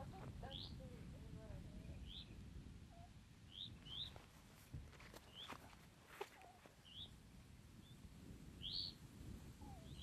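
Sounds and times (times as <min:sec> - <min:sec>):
faint bird chirps: 0:01.8 - 0:04.1, 0:06.4 - 0:07.2, 0:08.6 - 0:09.0.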